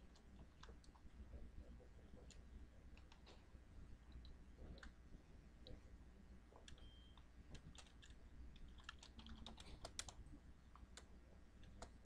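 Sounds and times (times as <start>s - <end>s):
faint keyboard typing: 0.0s - 3.4s, 6.5s - 12.0s.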